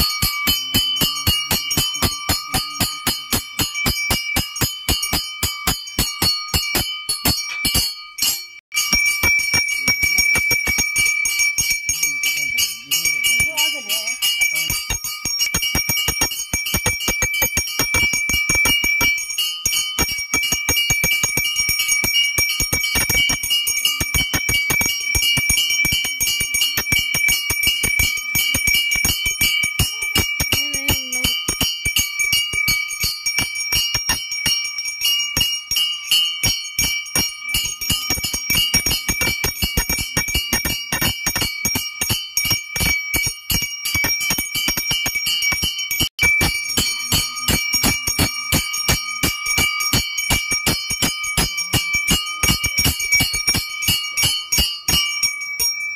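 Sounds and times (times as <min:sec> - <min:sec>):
bell rung rapidly: 0:00.0 - 0:55.9.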